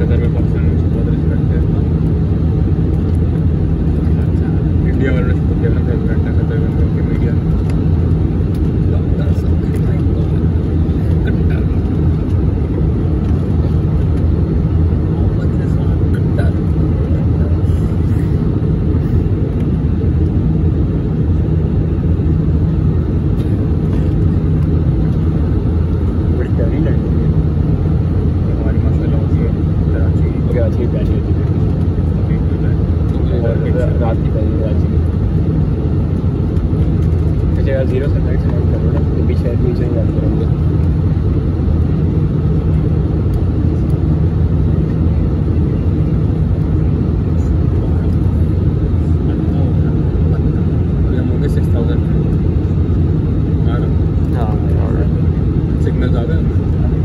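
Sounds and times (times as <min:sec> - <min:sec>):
deep rumble of airplane cabin: 0:00.0 - 0:57.0.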